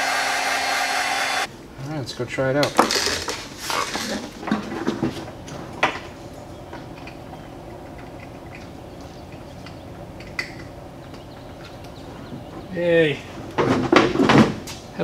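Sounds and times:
steady low hum: 3.3s - 13.9s.

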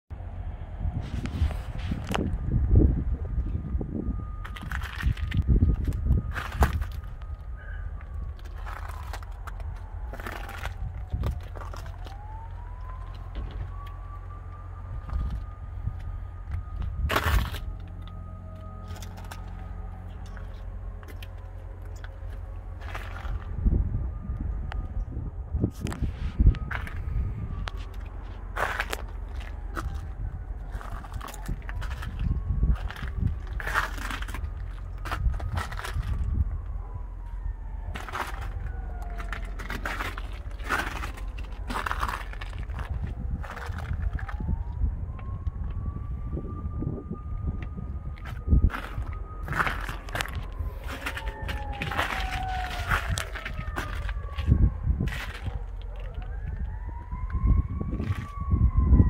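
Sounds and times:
steady low rumble: 0.1s - 59.0s
vehicle siren wailing: 0.2s - 59.0s
footsteps on boat deck: 47.6s - 54.5s.

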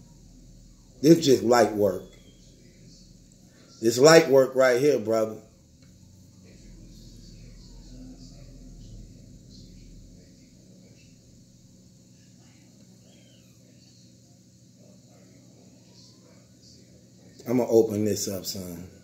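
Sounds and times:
faint low rumble: 0.0s - 17.0s
faint indistinct voices: 0.0s - 19.0s.

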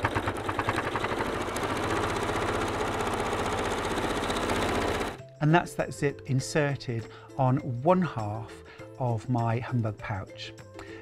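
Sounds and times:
electric sewing machine stitching: 0.0s - 5.2s.

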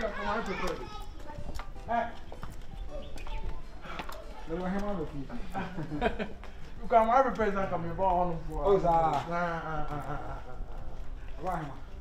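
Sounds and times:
footsteps on hard ground: 0.0s - 12.0s.

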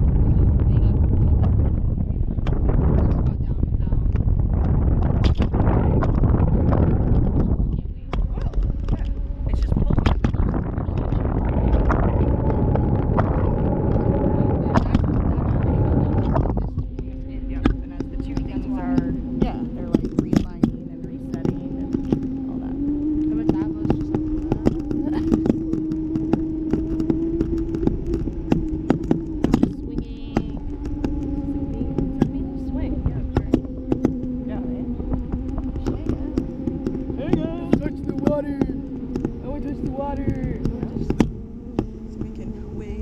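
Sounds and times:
steady hum: 0.0s - 43.0s
wind buffeting microphone: 0.0s - 43.0s.

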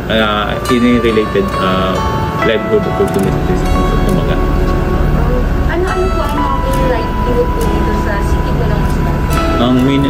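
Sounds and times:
background music: 0.0s - 10.0s
held tone: 0.0s - 10.0s
steady low rumble: 0.0s - 10.0s.

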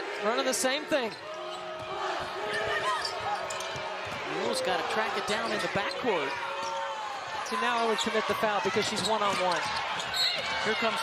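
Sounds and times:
arena crowd noise: 0.0s - 11.0s
sneakers squeaking on court: 1.1s - 4.4s, 5.4s - 10.7s.

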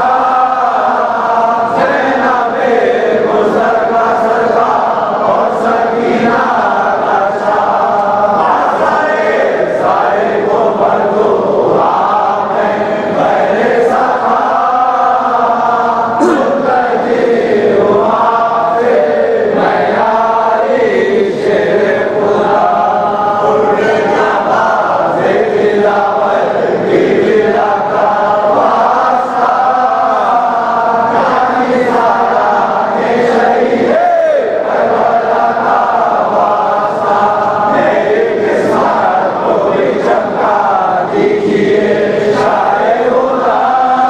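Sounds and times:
men chanting together: 0.0s - 44.0s.

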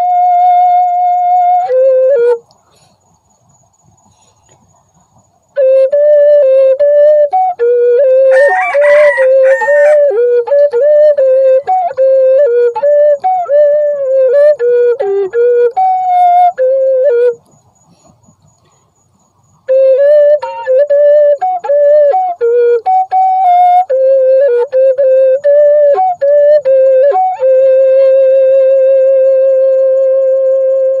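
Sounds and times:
solo flute-like melody: 0.0s - 2.9s, 5.4s - 18.4s, 19.2s - 31.0s.

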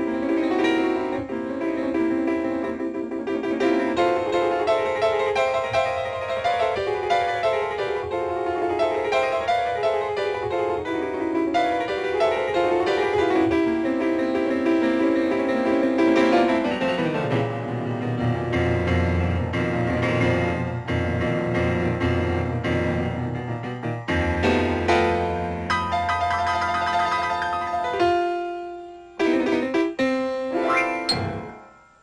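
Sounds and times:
fast solo grand piano: 0.0s - 31.6s.

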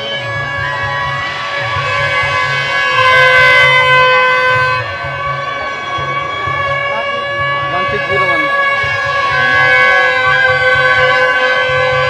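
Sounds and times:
held reed instrument note: 0.0s - 12.0s
repeating drum beat: 0.0s - 12.0s.

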